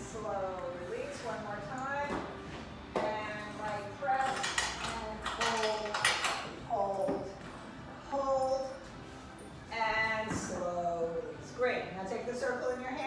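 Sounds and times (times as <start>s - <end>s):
metal springs clinking and clanking: 4.0s - 7.0s
people talking: 6.7s - 7.3s.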